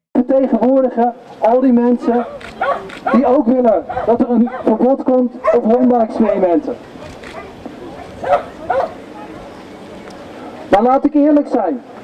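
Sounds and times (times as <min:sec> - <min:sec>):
dog barking: 0:02.0 - 0:03.3, 0:03.9 - 0:04.8, 0:05.4 - 0:09.0.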